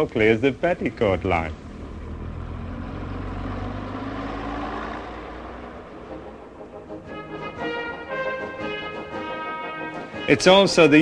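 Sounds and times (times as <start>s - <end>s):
diesel train engine drone: 0.0s - 10.2s.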